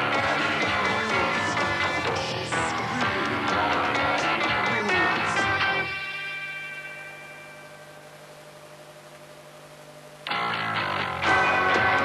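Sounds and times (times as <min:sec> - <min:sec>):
held guitar chord ringing: 0:05.6 - 0:08.2
rock band playing: 0:10.3 - 0:12.0.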